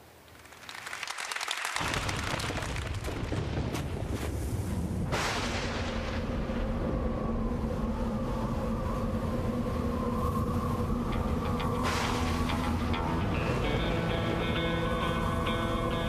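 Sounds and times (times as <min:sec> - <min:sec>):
rush of noise: 0:03.9 - 0:16.0
sustained music drone: 0:05.8 - 0:16.0.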